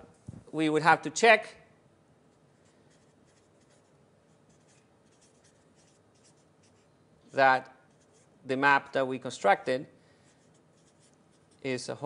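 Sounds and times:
scratching of writing on board: 0:02.9 - 0:06.9, 0:07.9 - 0:08.4, 0:10.4 - 0:11.6.

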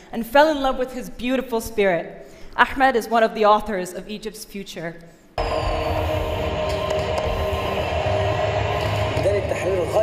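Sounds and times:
held tones: 0:05.4 - 0:10.0
low rumble: 0:05.4 - 0:10.0
protest crowd noise: 0:05.4 - 0:10.0.

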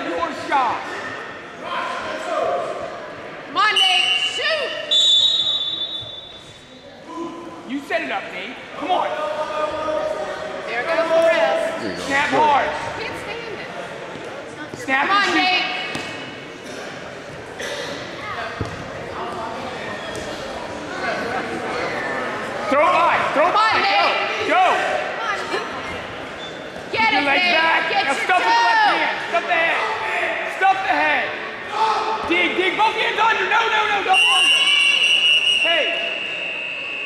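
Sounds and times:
voices shouting in a gymnasium: 0:00.0 - 0:37.0.

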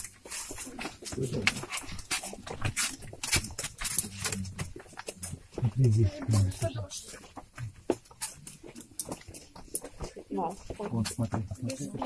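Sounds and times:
footsteps on stone: 0:00.0 - 0:12.0.

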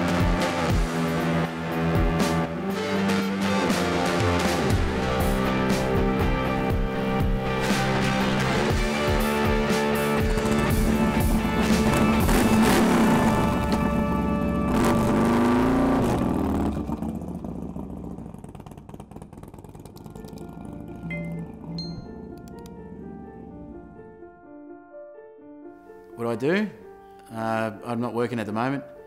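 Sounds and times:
music playing: 0:00.0 - 0:15.1, 0:21.0 - 0:29.0
motorcycle engine revving: 0:00.0 - 0:24.3.

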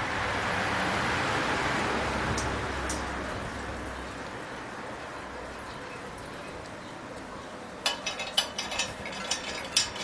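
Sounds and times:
metal cap clicking and scraping: 0:07.8 - 0:10.0.

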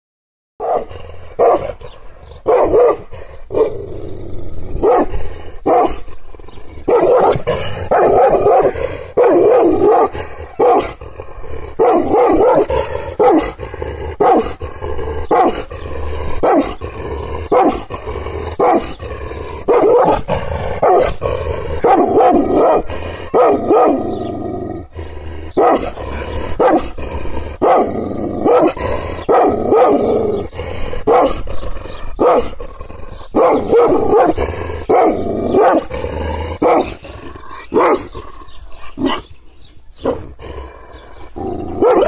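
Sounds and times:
dog barking angrily: 0:00.6 - 0:03.9, 0:04.7 - 0:06.1, 0:06.8 - 0:24.4, 0:25.4 - 0:39.3, 0:40.0 - 0:42.0.

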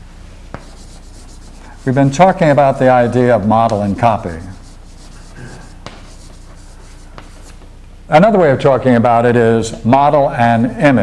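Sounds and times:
chalk scratching on blackboard: 0:00.5 - 0:07.6.

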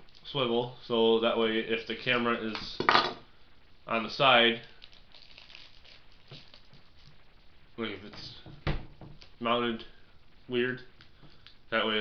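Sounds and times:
plastic bag crinkling: 0:04.5 - 0:07.2.

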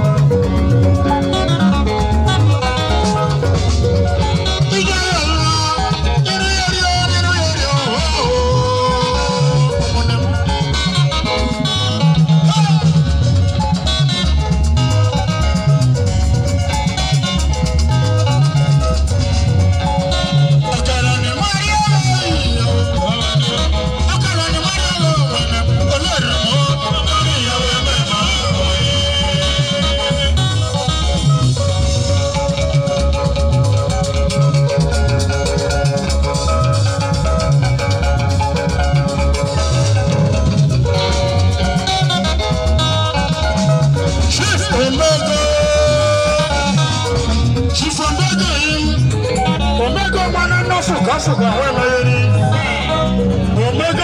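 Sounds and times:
upbeat dance band music: 0:00.0 - 0:54.0.

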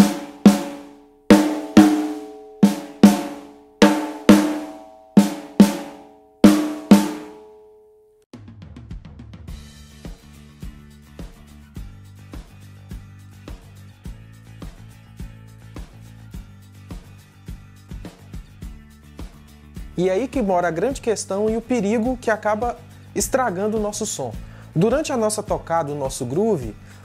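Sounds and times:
snare drum strokes: 0:00.0 - 0:07.4.

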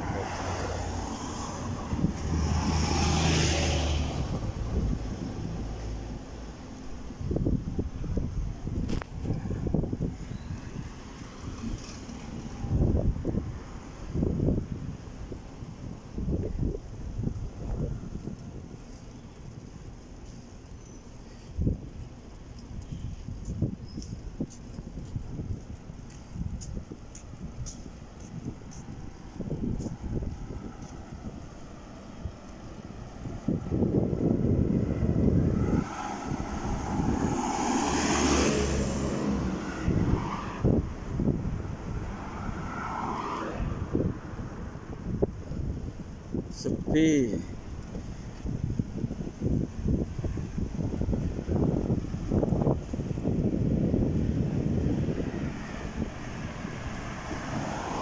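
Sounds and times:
motor vehicle passing by: 0:00.0 - 0:07.6, 0:08.8 - 0:14.3, 0:27.1 - 0:46.4, 0:47.2 - 0:58.0
wind gusts on microphone: 0:00.0 - 0:58.0.

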